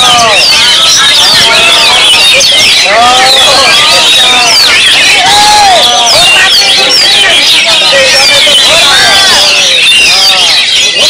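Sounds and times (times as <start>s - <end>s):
songbirds singing in chorus: 0.0s - 11.0s.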